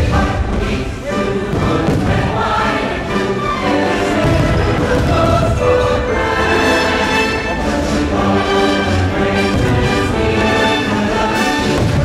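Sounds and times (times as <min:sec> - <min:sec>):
choir singing with orchestra: 0:00.0 - 0:12.0.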